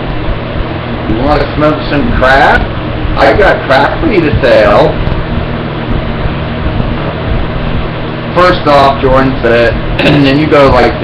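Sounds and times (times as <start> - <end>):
steady hum with hiss: 0.0 - 11.0.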